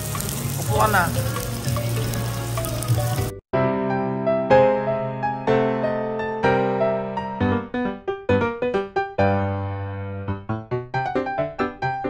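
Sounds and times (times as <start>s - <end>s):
food sizzling on a grill: 0.0s - 3.4s.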